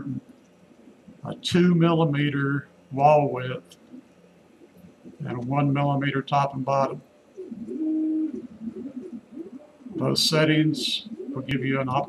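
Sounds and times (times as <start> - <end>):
bird cooing: 7.4 - 12.0.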